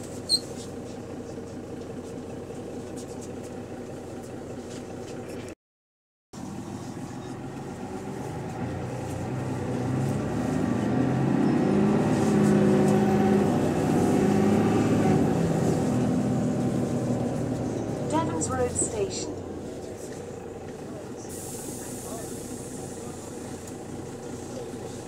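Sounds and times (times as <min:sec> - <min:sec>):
bus engine driving: 0:00.0 - 0:05.6, 0:06.4 - 0:25.0.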